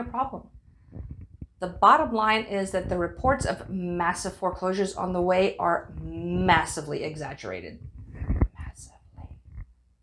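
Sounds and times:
woman whispering: 0:08.2 - 0:09.6.

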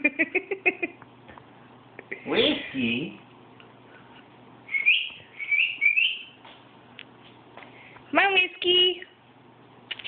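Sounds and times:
faint steady hum: 0:00.0 - 0:10.0
rising whistled chirps: 0:04.7 - 0:06.4.

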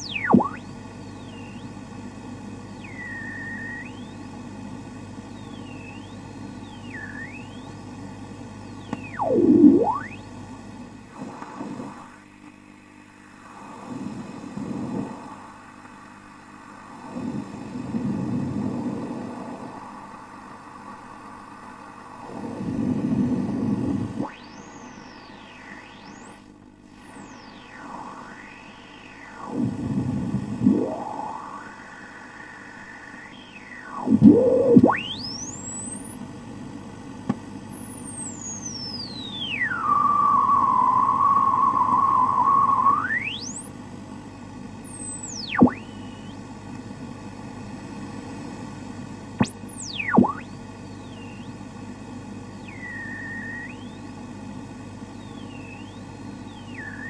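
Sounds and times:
interference whistles sweeping in pitch: 0:00.0 - 0:01.8, 0:02.7 - 0:04.3, 0:05.3 - 0:07.9, 0:08.6 - 0:10.3, 0:24.2 - 0:26.4, 0:27.0 - 0:36.4, 0:37.5 - 0:43.8, 0:44.8 - 0:46.4, 0:49.4 - 0:51.6, 0:52.5 - 0:54.2, 0:55.1 - 0:57.0
radio static: 0:00.0 - 0:08.0, 0:08.6 - 0:10.4, 0:11.0 - 0:12.2, 0:22.2 - 0:36.5, 0:37.3 - 0:43.6, 0:44.8 - 0:46.4, 0:49.4 - 0:54.2, 0:55.0 - 0:57.0
low hum: 0:00.0 - 0:57.0.

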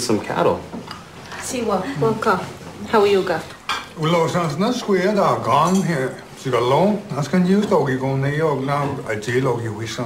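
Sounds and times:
cutlery clinking on plates: 0:03.6 - 0:04.9, 0:05.5 - 0:06.3.

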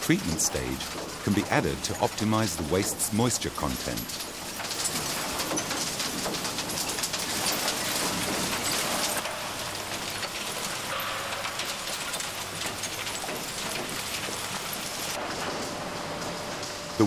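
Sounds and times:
refuse tumbling and clattering: 0:00.0 - 0:17.0.

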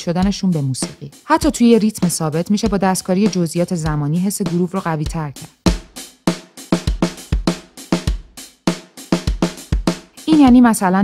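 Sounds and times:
drum kit playing groove: 0:00.0 - 0:11.0.

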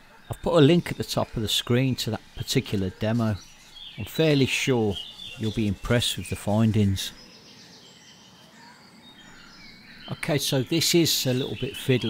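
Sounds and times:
faint birdsong chirps: 0:00.0 - 0:12.0
low steady hiss: 0:00.0 - 0:12.0.

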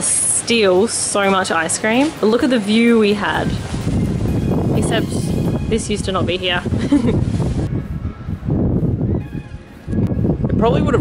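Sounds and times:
wind buffeting microphone: 0:01.7 - 0:11.0.

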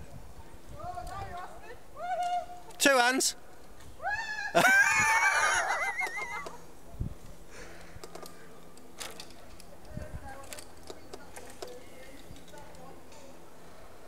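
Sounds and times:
high-pitched laughter: 0:04.3 - 0:06.5.

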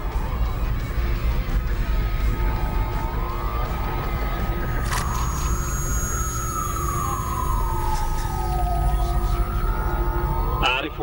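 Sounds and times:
low droning background music: 0:00.0 - 0:11.0
police siren wailing: 0:00.0 - 0:11.0.

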